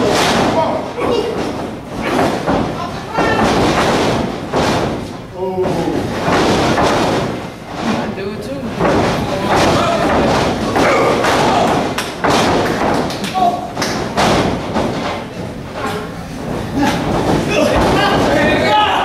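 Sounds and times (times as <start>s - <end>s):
voices shouting in echoing hall: 0.0s - 3.6s, 9.6s - 12.2s, 13.1s - 14.0s, 15.9s - 19.0s
bodies thudding on ring canvas: 0.0s - 19.0s.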